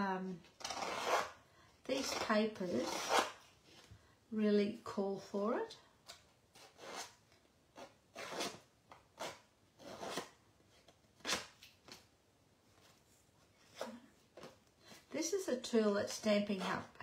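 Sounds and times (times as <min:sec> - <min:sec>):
tool scraping paper edge: 0:00.6 - 0:01.4, 0:02.0 - 0:03.4, 0:07.8 - 0:08.6, 0:09.2 - 0:10.3.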